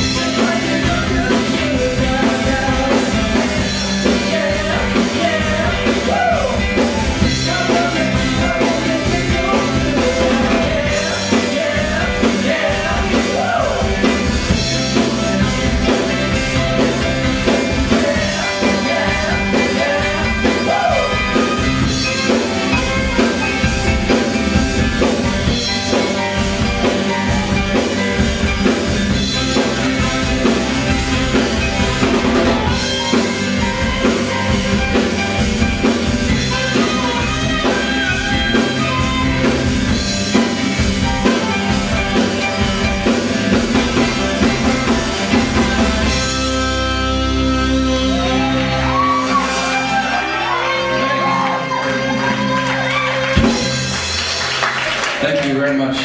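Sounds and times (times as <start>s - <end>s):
person singing: 0.0s - 14.5s, 17.3s - 23.5s
drum kit: 0.0s - 55.7s
guitars: 0.0s - 56.0s
saxophone: 44.0s - 53.9s.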